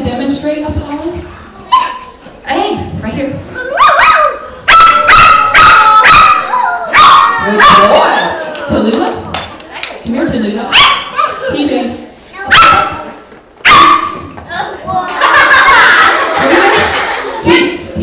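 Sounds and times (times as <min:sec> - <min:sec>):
small dog yapping: 0:03.8 - 0:07.9, 0:13.7 - 0:14.2.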